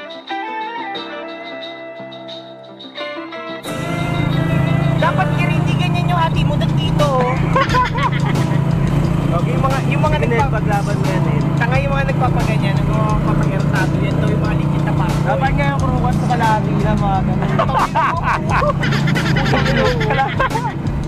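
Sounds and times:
vehicle engine humming: 3.6s - 21.0s
people talking: 4.9s - 8.6s, 9.3s - 20.8s.

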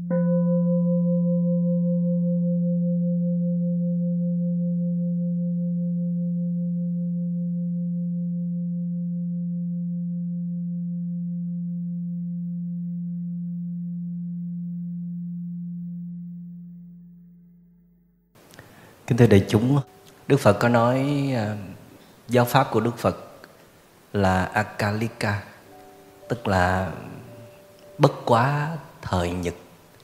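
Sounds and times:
bowl bell ringing: 0.0s - 17.1s.

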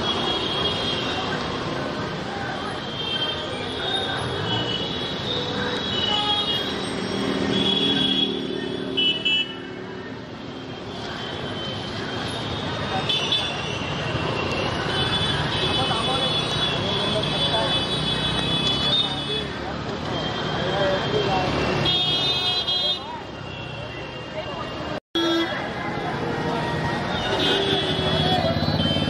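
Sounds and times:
crowd voices: 0.0s - 29.0s
motor scooter traffic: 0.0s - 29.0s
horns tooting: 2.7s - 9.7s, 27.0s - 29.0s.

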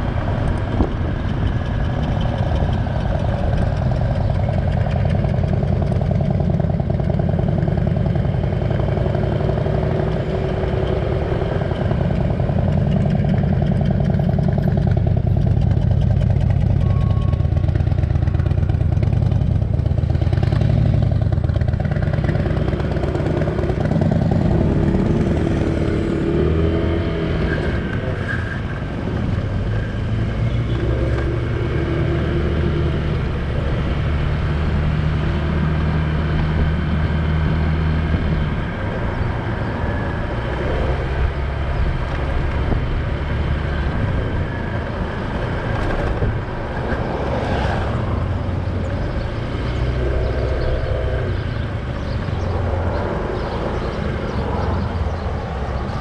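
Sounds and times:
motorcycle engine running: 0.0s - 56.0s
wind and road noise: 0.0s - 56.0s.

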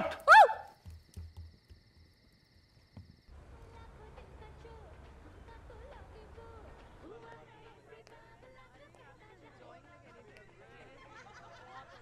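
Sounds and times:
person shouting: 0.0s - 0.6s.

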